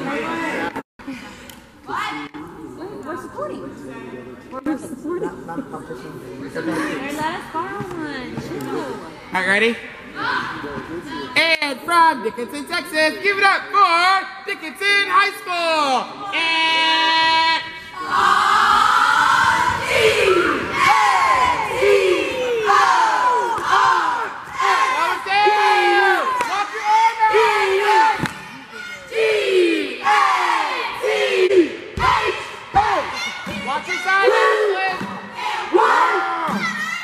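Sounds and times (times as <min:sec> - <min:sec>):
cheer squad shouting in unison: 0:16.2 - 0:37.0.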